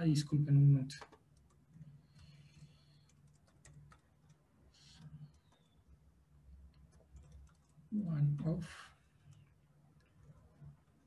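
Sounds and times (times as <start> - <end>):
low background hum: 0.0 - 11.0
keyboard typing clicks: 3.0 - 5.8, 6.8 - 7.7.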